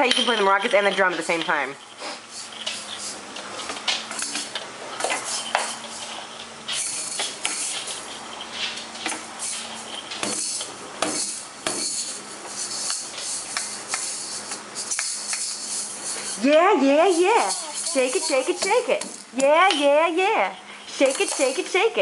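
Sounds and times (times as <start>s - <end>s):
toy maracas rattling: 0.0s - 3.2s, 5.3s - 8.5s, 9.4s - 22.0s.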